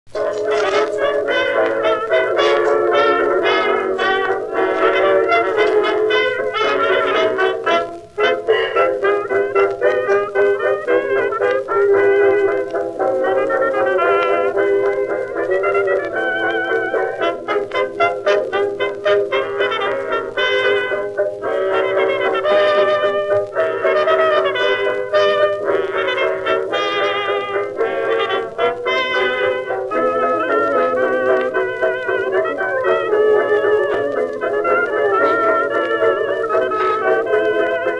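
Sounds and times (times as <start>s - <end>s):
dance orchestra with brass: 0.1s - 37.9s.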